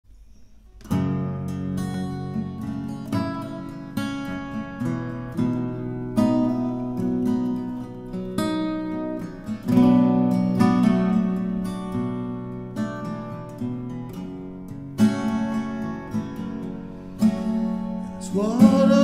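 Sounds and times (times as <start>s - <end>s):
acoustic guitar chords: 0.1s - 19.0s.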